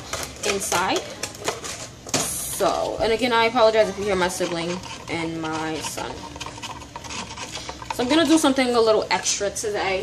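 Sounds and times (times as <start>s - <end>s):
stirrer scraping inside cup: 0.0s - 9.4s.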